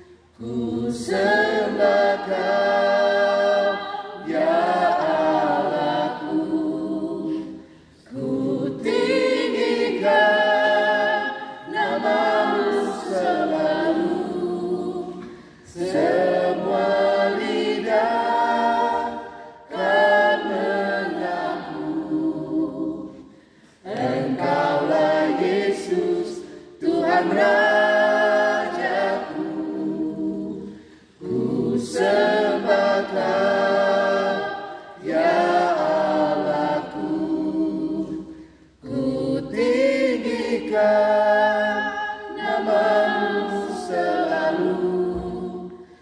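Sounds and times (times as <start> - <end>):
group singing a cappella: 0.0 - 46.0.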